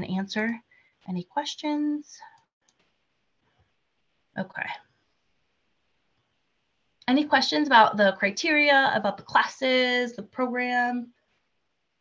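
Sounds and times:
woman speaking: 0.0s - 2.4s, 4.3s - 4.9s, 7.0s - 11.2s.

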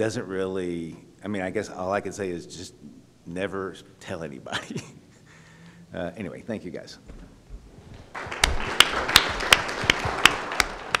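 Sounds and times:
audience applauding: 8.0s - 11.0s.

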